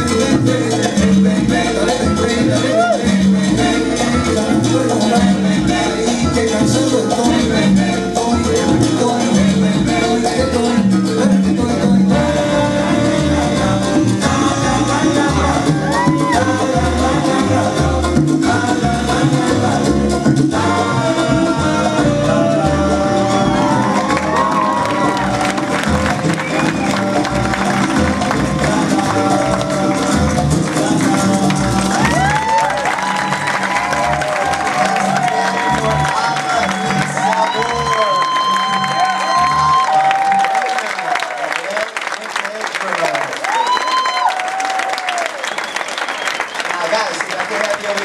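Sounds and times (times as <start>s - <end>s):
salsa music: 0.0s - 41.8s, 43.0s - 47.2s
audience cheering and whooping: 2.5s - 3.3s, 15.2s - 16.8s, 22.1s - 42.1s, 42.9s - 47.1s
audience applause: 22.4s - 48.0s.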